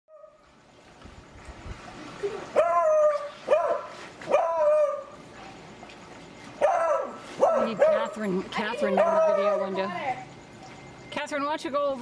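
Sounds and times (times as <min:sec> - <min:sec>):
dog barking: 0:02.6 - 0:05.1, 0:06.6 - 0:08.2, 0:08.9 - 0:09.8.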